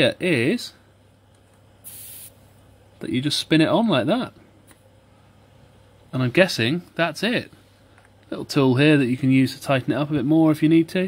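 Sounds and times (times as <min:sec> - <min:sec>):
air hissing from tyre valve: 0:01.8 - 0:02.4.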